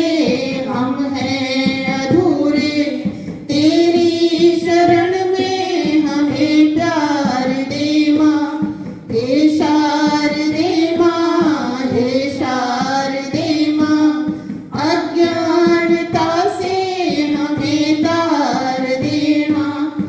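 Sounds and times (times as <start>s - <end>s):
women singing into microphones: 0.0s - 20.0s.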